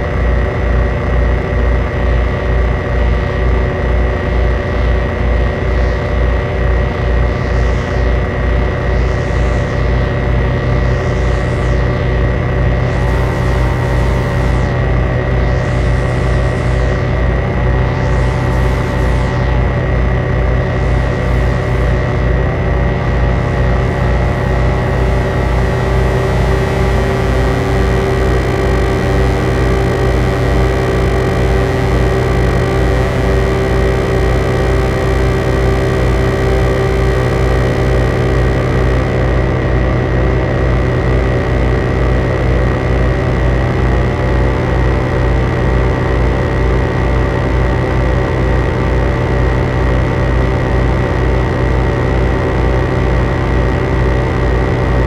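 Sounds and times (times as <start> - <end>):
fast pulsing low bass: 0.0 - 55.0
synthesizer noise drone: 0.0 - 55.0.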